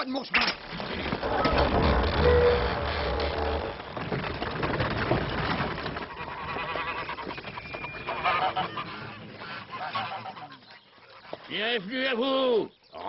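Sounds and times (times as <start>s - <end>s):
farmyard birds calling: 5.6s - 13.0s.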